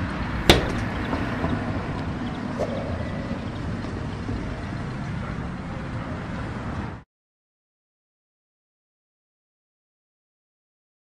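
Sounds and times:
low outdoor rumble: 0.0s - 7.0s.

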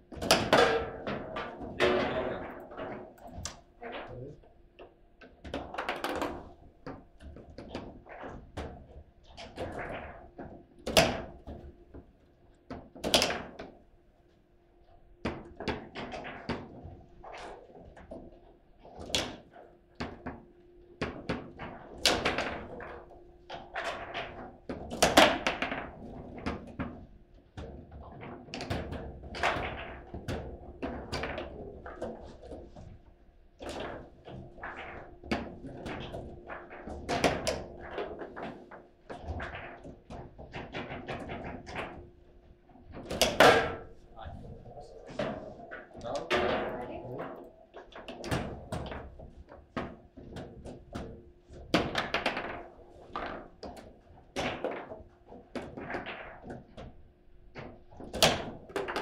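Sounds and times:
table football clacks and knocks: 0.1s - 3.6s, 4.8s - 13.8s, 15.2s - 59.0s.

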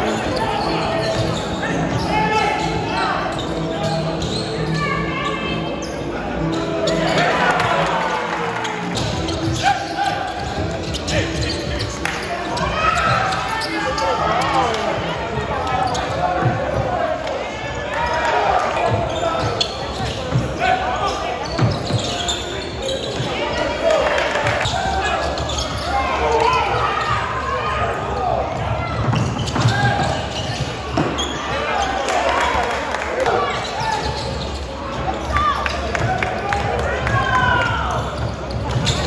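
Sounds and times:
basketball bouncing in gym: 28.3s - 31.4s.

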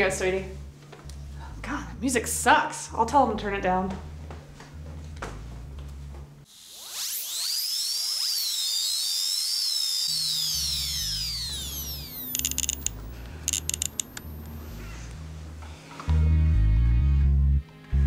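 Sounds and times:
rattling clicks: 12.3s - 14.5s.

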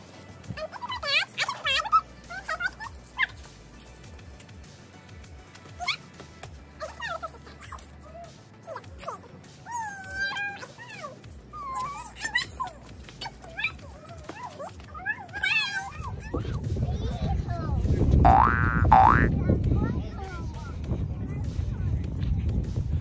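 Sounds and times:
children's voices and squeals: 0.1s - 4.0s, 5.5s - 18.2s
wind rumble on microphone: 15.9s - 23.0s.

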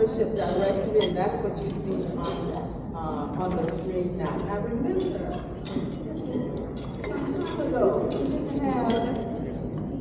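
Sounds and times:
people talking: 0.0s - 9.7s
glasses and silverware clinking: 0.0s - 9.9s.

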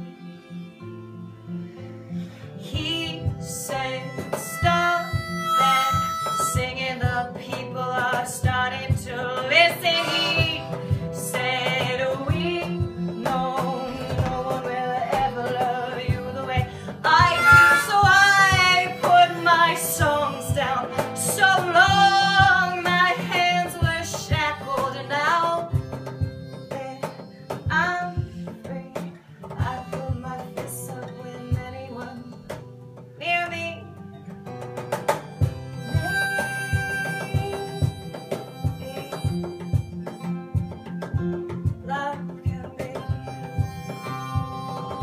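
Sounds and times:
harmonica solo: 0.0s - 7.9s, 9.5s - 29.0s, 34.6s - 41.8s, 42.8s - 45.0s
strummed acoustic guitar: 0.0s - 45.0s
cajon beat: 2.6s - 45.0s.

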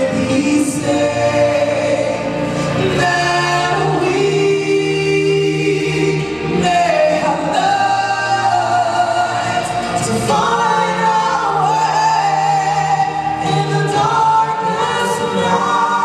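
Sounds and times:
vocal group singing in harmony: 0.0s - 16.0s.

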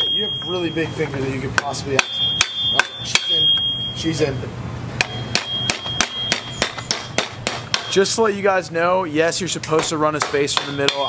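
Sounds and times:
thin high ringing tone: 0.0s - 4.4s, 5.0s - 8.3s
hammer tapping on metal: 1.6s - 3.7s, 5.0s - 8.1s, 9.6s - 11.0s.

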